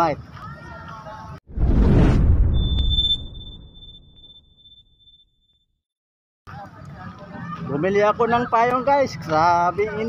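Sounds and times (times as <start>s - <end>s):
low rumbling whoosh: 1.5s - 4.8s
high ringing ping: 2.6s - 5.3s.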